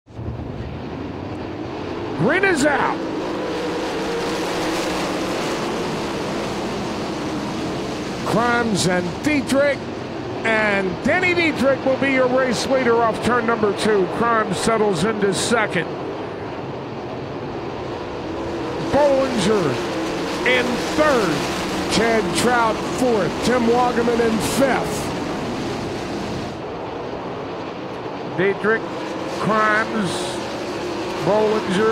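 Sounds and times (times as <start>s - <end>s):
racing car engines droning: 0.1s - 31.9s.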